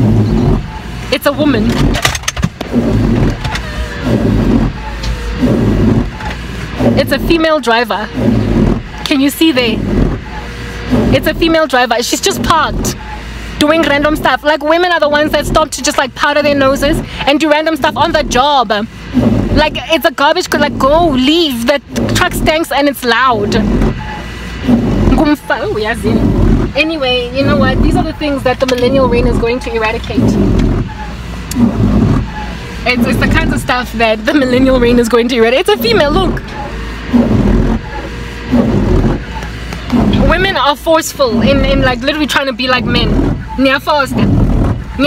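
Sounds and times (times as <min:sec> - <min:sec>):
garbage truck engine rumble: 0:00.0 - 0:45.0
woman speaking: 0:01.1 - 0:01.9, 0:06.9 - 0:08.2, 0:09.0 - 0:09.8, 0:11.0 - 0:13.0, 0:13.6 - 0:18.9, 0:19.5 - 0:23.8, 0:25.1 - 0:30.5, 0:32.8 - 0:36.5, 0:40.0 - 0:44.4.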